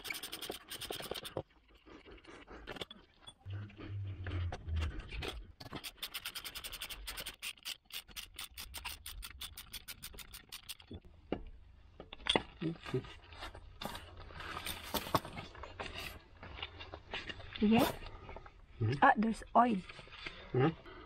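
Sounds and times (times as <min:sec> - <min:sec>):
ratchet wrench clicking: 0:05.8 - 0:10.9.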